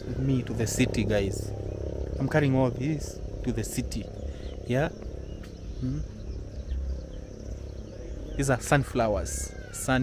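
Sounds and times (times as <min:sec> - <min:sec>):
faint high insect drone: 0:00.0 - 0:10.0
low rumble on microphone: 0:00.0 - 0:10.0.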